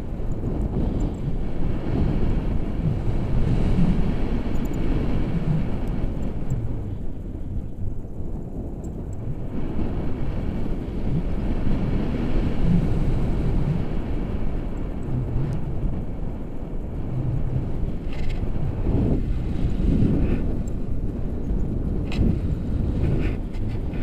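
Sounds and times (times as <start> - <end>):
wind buffeting microphone: 0.0 - 24.0.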